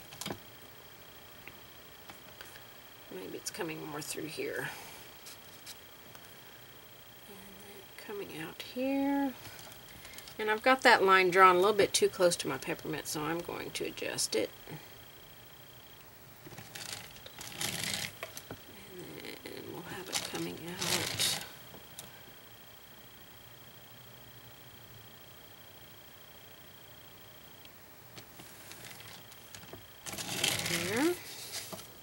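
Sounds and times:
rustling scraping handling: 16.5s - 18.5s, 20.0s - 21.5s, 28.3s - 32.0s.

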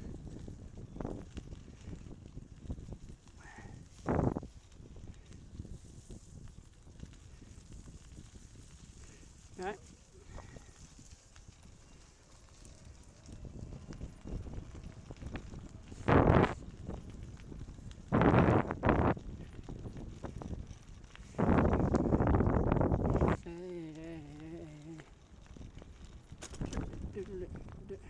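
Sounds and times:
bicycle rattling over bumpy path: 0.0s - 28.0s.

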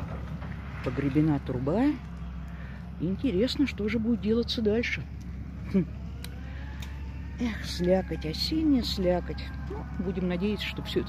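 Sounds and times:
excavator engine humming: 0.0s - 11.0s.

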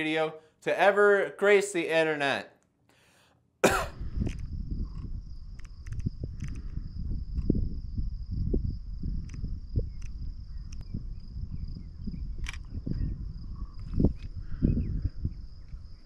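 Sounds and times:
cough-like vocal sound: 3.6s - 4.0s
scattered clicks: 4.2s - 6.7s, 9.2s - 10.9s, 12.4s - 12.7s
camera handling rumble: 4.2s - 7.6s, 9.2s - 10.9s, 12.2s - 14.4s.

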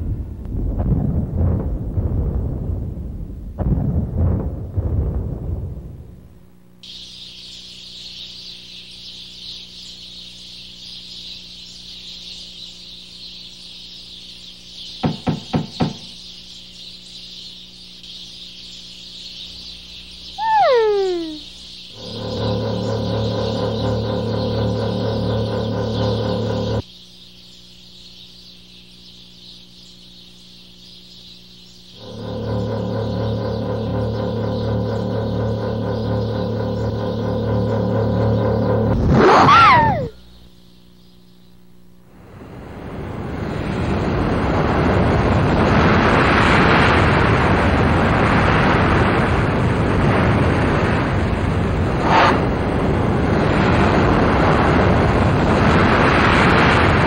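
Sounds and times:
high hiss: 6.8s - 22.1s
falling whistle-like call: 19.2s - 21.6s, 39.1s - 40.3s.

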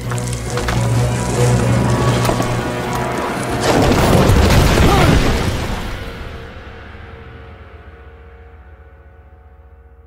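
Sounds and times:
rumbling crash of smashing rock: 3.4s - 6.4s.

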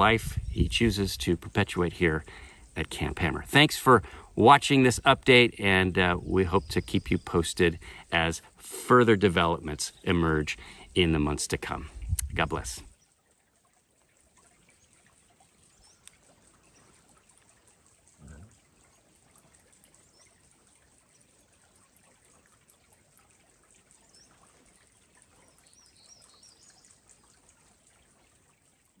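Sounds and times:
creek trickling: 0.0s - 29.0s
faint bird chirps: 25.3s - 27.4s.

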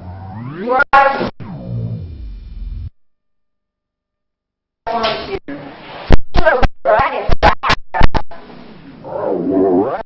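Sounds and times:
wavering voice-like tone: 0.0s - 1.6s, 8.0s - 10.0s.

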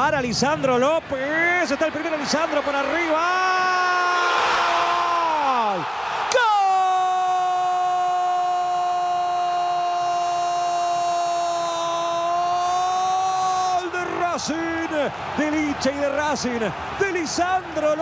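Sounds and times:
commentator fast speech: 0.0s - 3.8s, 13.8s - 18.0s
stadium crowd noise: 0.0s - 18.0s.

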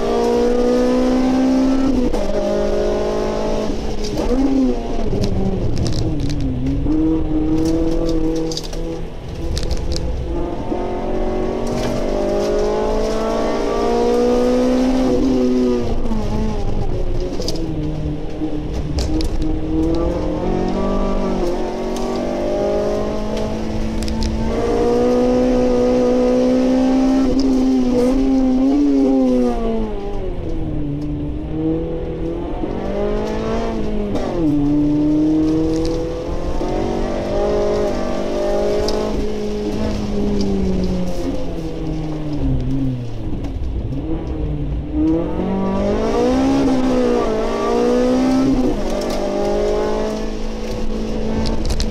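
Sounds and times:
car engine revving: 0.0s - 51.9s.

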